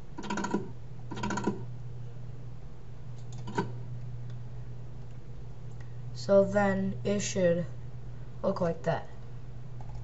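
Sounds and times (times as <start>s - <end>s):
low electrical hum: 0.0s - 10.0s
keyboard and mouse clicking: 0.2s - 1.6s, 3.2s - 3.7s, 9.8s - 10.0s.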